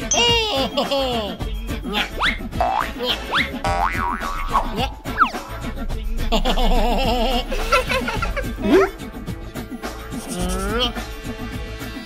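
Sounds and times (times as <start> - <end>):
cheerful cartoon music: 0.0 - 12.0
springy boing effects: 2.6 - 3.0, 3.6 - 5.6.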